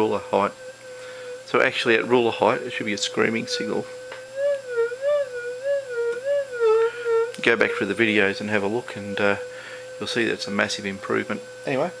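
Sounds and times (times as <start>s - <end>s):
metal detector wavering tone: 0.0s - 12.0s.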